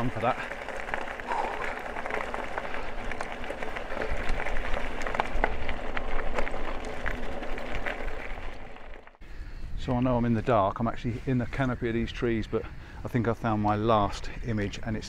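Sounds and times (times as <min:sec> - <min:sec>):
bike tyres rolling over gravel: 0:00.0 - 0:09.2.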